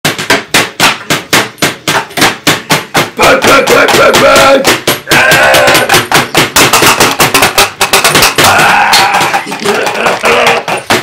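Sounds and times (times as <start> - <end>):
man yelling: 3.2 - 5.9.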